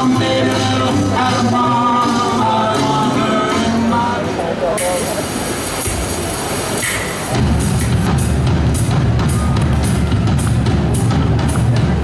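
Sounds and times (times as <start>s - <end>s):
steady hiss: 4.6s - 8.3s.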